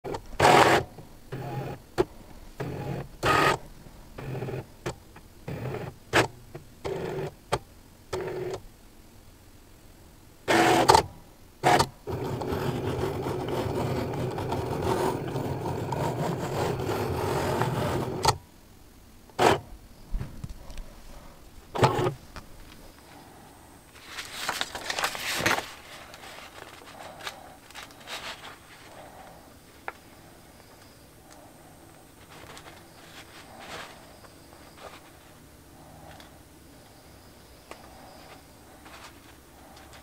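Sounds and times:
cutting machine motors whirring: 0:10.5 - 0:18.4, 0:19.4 - 0:19.7, 0:21.8 - 0:22.2.

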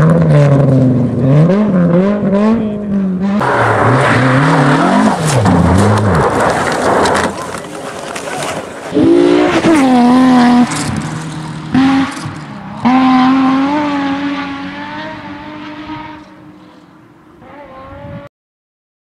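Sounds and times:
rally car engine at high revs: 0:00.0 - 0:07.7, 0:08.7 - 0:18.3.

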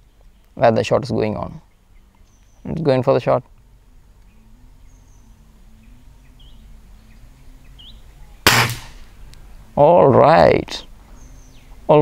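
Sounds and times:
low steady hum: 0:00.0 - 0:12.0
faint bird chirps: 0:01.4 - 0:02.9, 0:03.6 - 0:08.5, 0:10.8 - 0:12.0
air rifle shot crack: 0:08.4 - 0:09.2.

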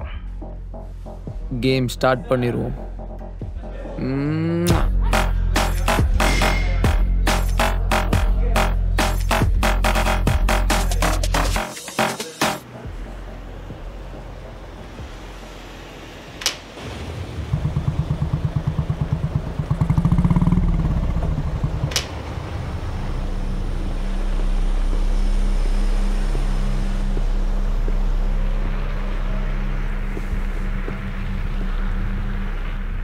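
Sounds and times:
motorcycle engine revving and idling: 0:17.2 - 0:25.6.

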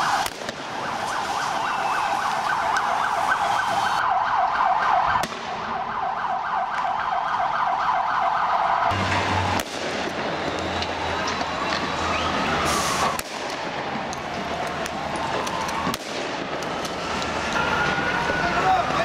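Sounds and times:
siren wailing warble: 0:00.0 - 0:09.5, 0:10.4 - 0:13.2, 0:16.9 - 0:19.0
street noise: 0:00.0 - 0:19.0.

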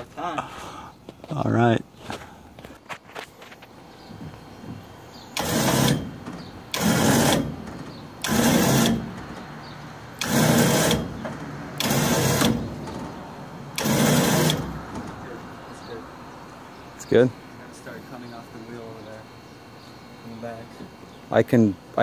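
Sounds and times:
truck lift running: 0:02.1 - 0:17.3.

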